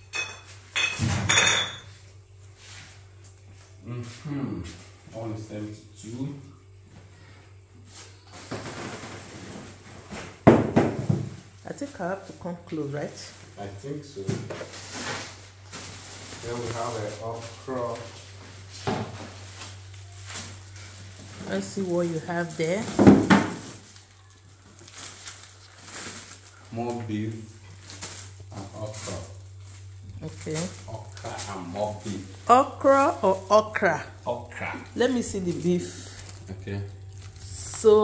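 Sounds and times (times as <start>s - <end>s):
steady low hum: 0.0s - 38.0s
plastic packaging rustling: 8.2s - 10.2s, 14.5s - 33.8s, 34.8s - 38.0s
plastic bags crinkling: 14.7s - 33.8s, 34.8s - 38.0s.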